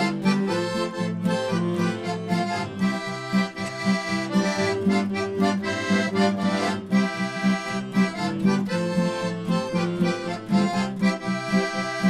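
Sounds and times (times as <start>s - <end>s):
accordion playing folk tune: 0.0s - 12.0s
repeating bass and chord pulse: 0.0s - 12.0s.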